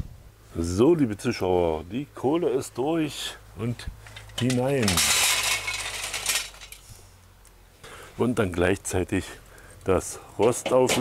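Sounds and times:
charcoal rattling and clinking: 4.0 - 6.8.

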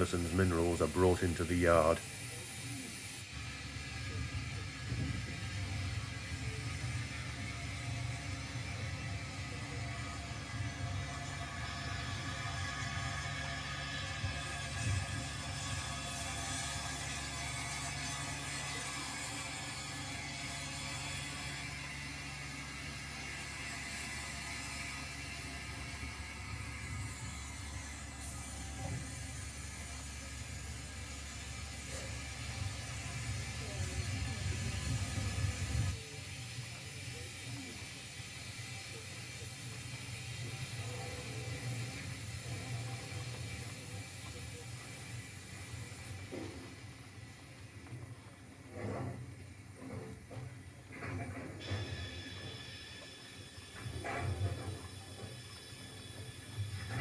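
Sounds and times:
model train motor hum: 0.0 - 57.0
wheel and mechanism noise: 0.0 - 57.0.

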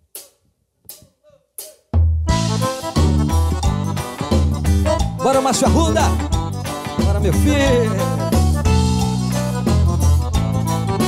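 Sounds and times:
band playing bass and drums: 2.2 - 11.0.

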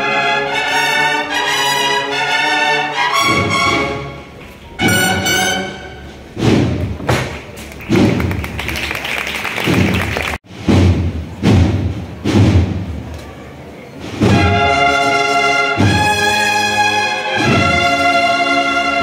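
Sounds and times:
heavy drum strikes: 6.2 - 8.4, 9.7 - 13.1, 14.0 - 14.8, 15.8 - 16.4, 17.4 - 18.0.

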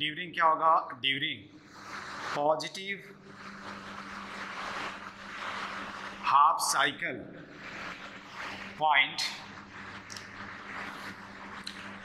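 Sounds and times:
steady low hum: 0.0 - 12.0
marker scratching on whiteboard: 7.5 - 12.0.

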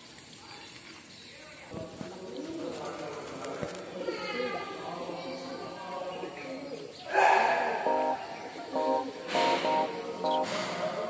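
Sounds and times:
pigeon cooing: 3.8 - 11.0.

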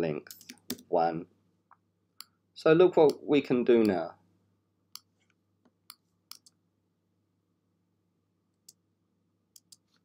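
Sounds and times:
computer mouse clicks: 4.9 - 6.6, 9.5 - 10.0.

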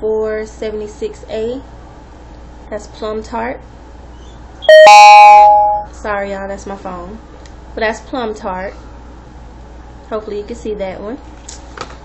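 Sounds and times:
mobile phone notification chime: 4.7 - 5.9.

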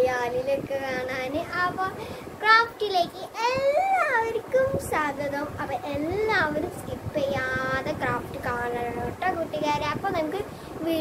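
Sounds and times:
girl singing: 0.0 - 11.0.

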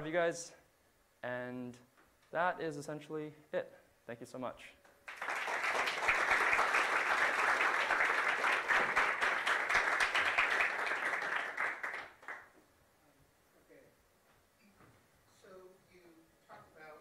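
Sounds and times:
audience applauding: 5.1 - 12.5.

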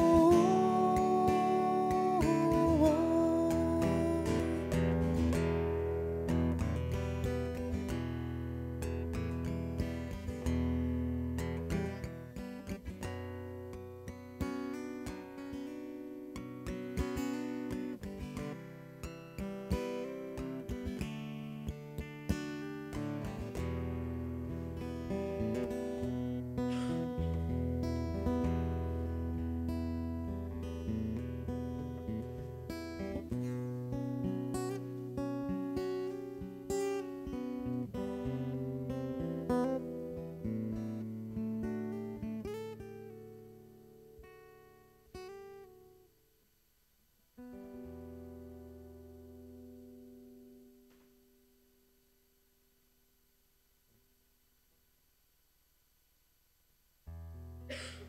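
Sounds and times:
acoustic guitar strumming chords: 0.0 - 46.2, 47.4 - 51.8.

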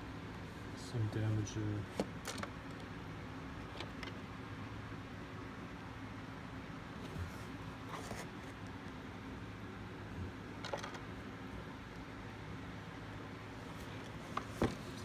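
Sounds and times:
low background hum: 0.0 - 15.0
cardboard boxes tapping and rustling: 14.3 - 15.0.

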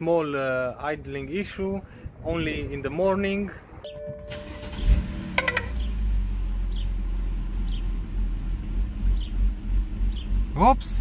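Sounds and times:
car engine cranking and idling: 3.9 - 11.0.

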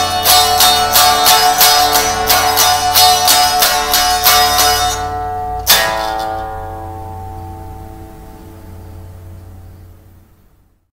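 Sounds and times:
electric guitar chord ringing: 0.0 - 10.7
low steady hum: 0.0 - 10.9.

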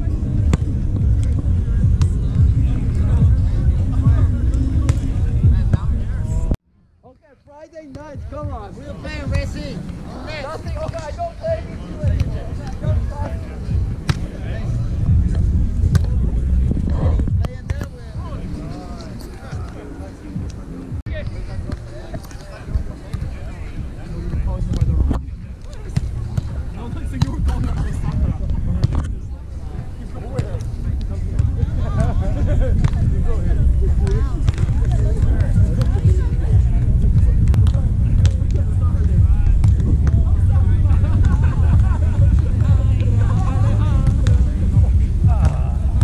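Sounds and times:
steady low rumble: 0.0 - 6.6, 11.5 - 18.7, 22.8 - 46.0
players' voices: 0.0 - 46.0
hands slapping volleyball: 37.5 - 38.6.

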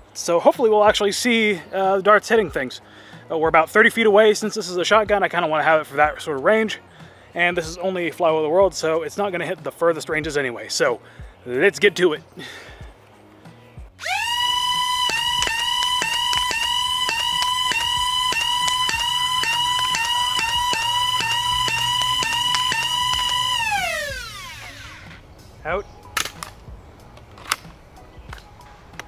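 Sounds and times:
toy blaster flywheels whining: 14.0 - 25.2
sharp clicks: 14.0 - 25.3, 26.1 - 29.0.

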